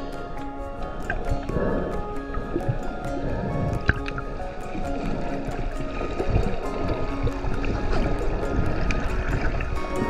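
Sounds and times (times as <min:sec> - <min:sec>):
music with held notes: 0:00.0 - 0:10.0
regular tapping beat: 0:00.0 - 0:10.0.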